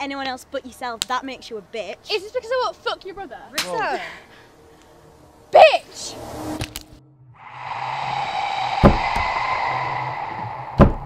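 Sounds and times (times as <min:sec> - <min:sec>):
hissing drone: 0:07.4 - 0:11.0
sharp hits: 0:07.4 - 0:11.0.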